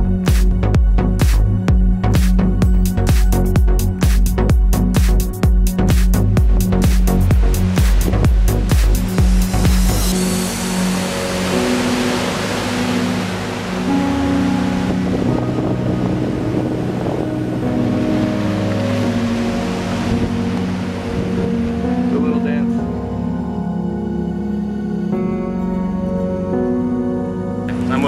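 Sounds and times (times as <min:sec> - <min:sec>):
music beat: 0:00.0 - 0:11.3
background music with sustained chords: 0:00.0 - 0:28.0.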